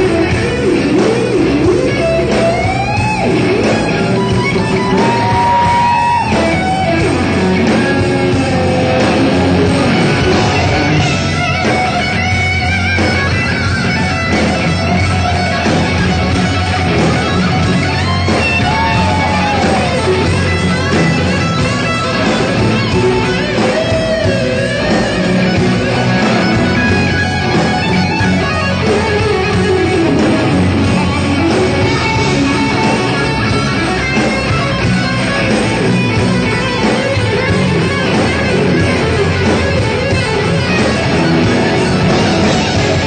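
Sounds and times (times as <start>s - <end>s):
bass guitar: 0.0s - 43.0s
distorted electric guitar solo: 0.0s - 43.0s
drum kit: 0.0s - 43.0s
rhythm guitar: 0.0s - 43.0s.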